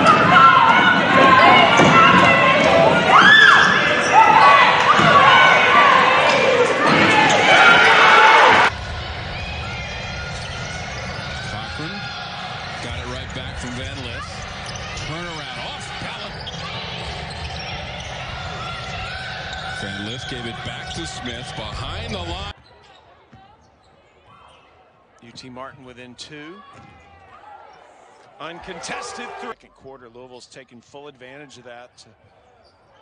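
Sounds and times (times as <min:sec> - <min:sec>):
voices shouting: 0:00.0 - 0:22.6, 0:26.7 - 0:29.6.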